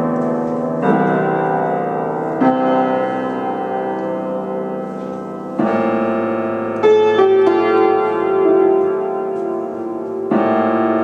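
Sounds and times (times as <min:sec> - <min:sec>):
solo piano chords and notes: 0:00.0 - 0:11.0.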